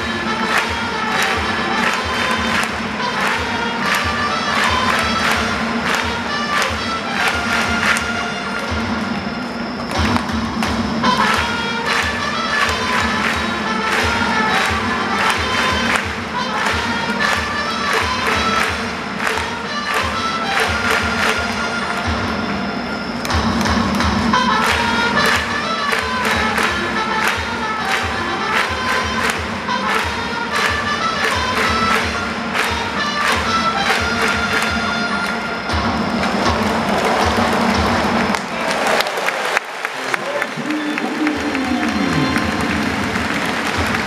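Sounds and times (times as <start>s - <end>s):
trumpet tune: 0.0s - 38.2s, 40.9s - 44.0s
drums beating: 0.0s - 39.0s, 40.5s - 44.0s.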